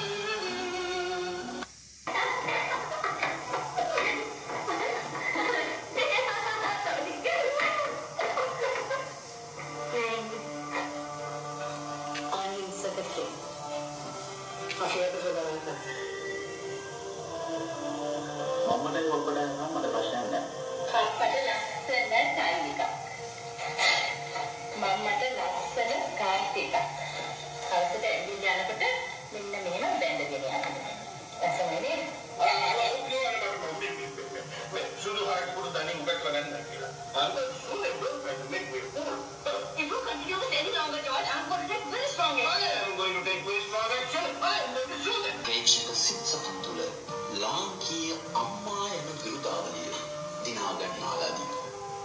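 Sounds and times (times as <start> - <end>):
background music: 0.0 - 52.0
dialogue: 0.0 - 52.0.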